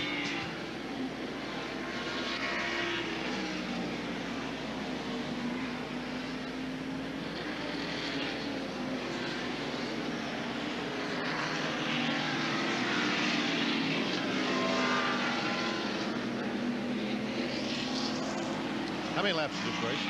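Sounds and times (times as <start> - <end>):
race car engines at speed: 0.0 - 20.0.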